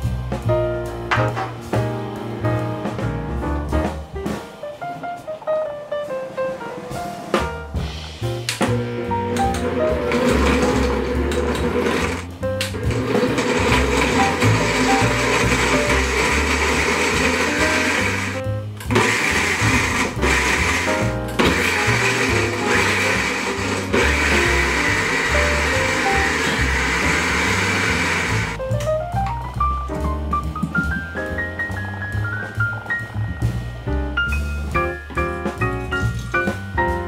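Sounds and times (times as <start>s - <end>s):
blender motor grinding: 8.7s - 28.6s.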